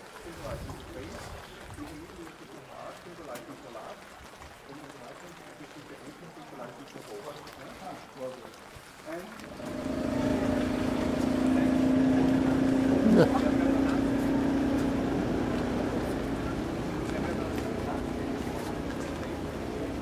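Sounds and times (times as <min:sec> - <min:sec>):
rain on umbrellas: 0:00.0 - 0:20.0
low droning tone: 0:09.4 - 0:20.0.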